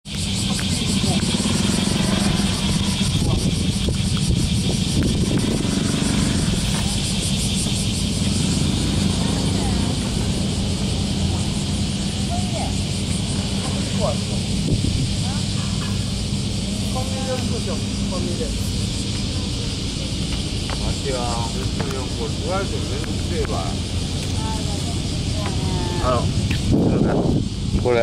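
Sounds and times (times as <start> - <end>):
faint distant voices: 0.4 - 28.0.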